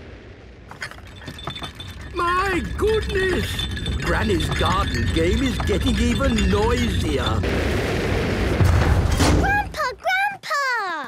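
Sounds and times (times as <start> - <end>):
teacups rattling and clinking: 0.7 - 7.4
rocket rumble: 7.3 - 9.4.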